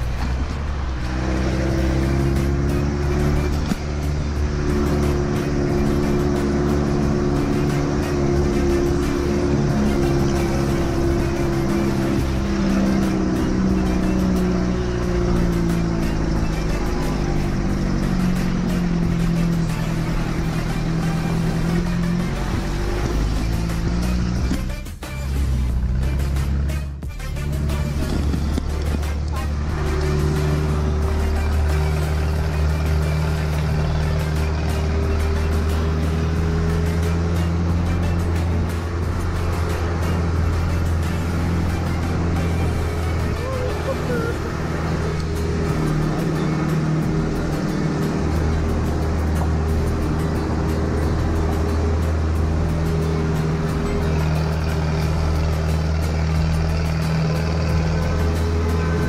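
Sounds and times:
jeep engine under load: 0.0s - 59.0s.

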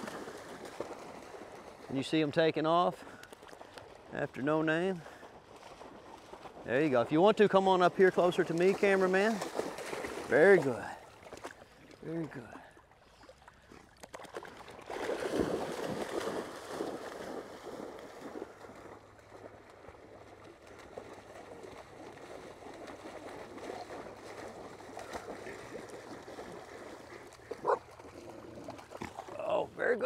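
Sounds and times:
dogs splashing through water: 0.0s - 30.0s.

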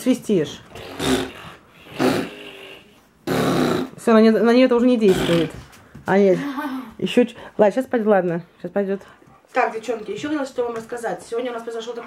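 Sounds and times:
short rough vocal sounds: 0.8s - 4.0s.

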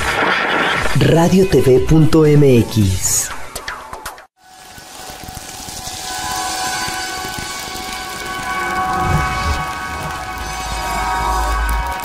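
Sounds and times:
hissing wash with held chords: 4.4s - 12.0s
deep rumble: 6.0s - 12.0s.

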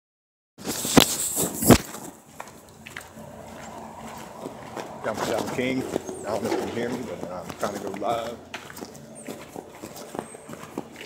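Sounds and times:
phone rubbing on microphone: 0.6s - 2.0s.

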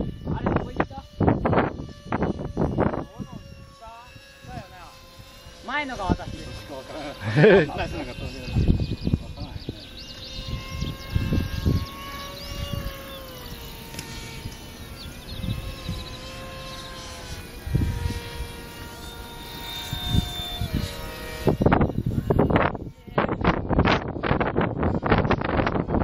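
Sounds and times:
model jet fans whining: 0.0s - 26.0s
wind buffeting microphone: 0.0s - 26.0s.

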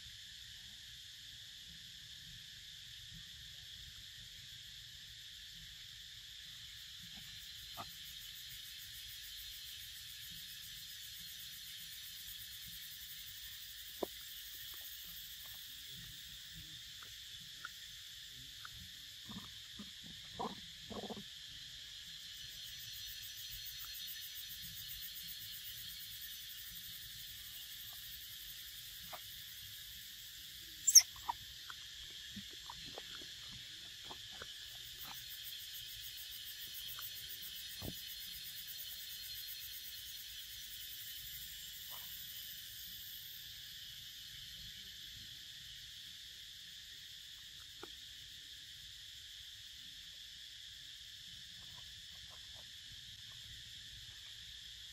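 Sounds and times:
insect chorus drone: 0.0s - 54.9s
monkeys clicking and grunting: 18.6s - 21.4s, 30.8s - 35.2s
sharp high squeak: 30.8s - 31.4s.

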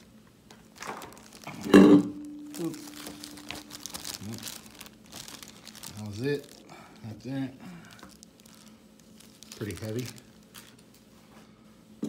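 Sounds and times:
plastic bag crinkling: 0.0s - 11.1s.

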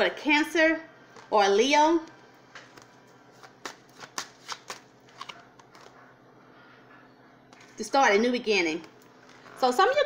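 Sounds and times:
playing cards being shuffled: 2.6s - 5.9s.

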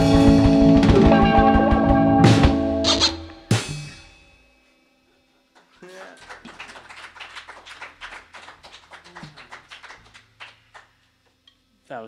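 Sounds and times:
small audience applauding: 5.5s - 11.2s.

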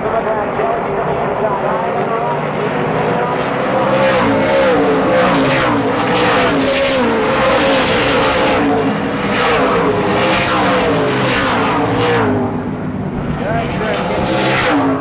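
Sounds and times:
race cars revving past: 0.0s - 15.0s.

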